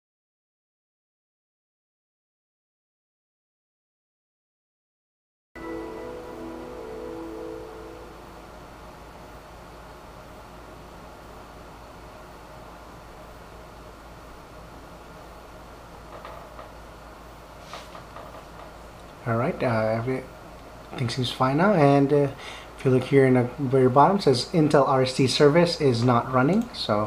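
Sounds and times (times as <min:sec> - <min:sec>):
startup chime chord: 0:05.6 - 0:09.4
computer humming: 0:05.6 - 0:27.0.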